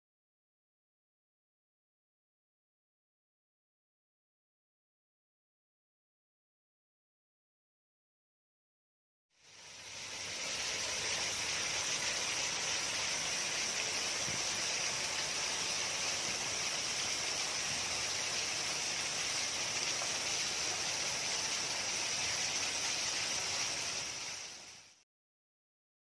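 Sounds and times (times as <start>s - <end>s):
waterfall splashing: 9.5s - 25.0s.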